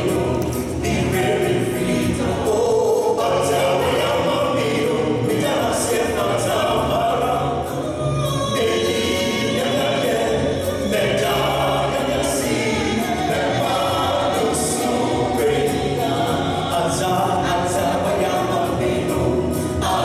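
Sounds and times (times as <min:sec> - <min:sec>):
gospel group singing: 0:00.0 - 0:20.0.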